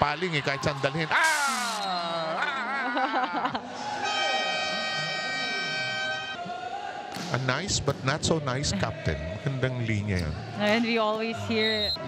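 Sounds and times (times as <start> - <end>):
horn sounding steady note: 4.0 - 6.4.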